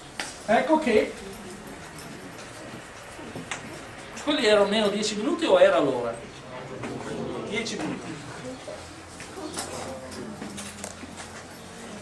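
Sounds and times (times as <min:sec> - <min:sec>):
students murmuring: 0:00.5 - 0:12.0.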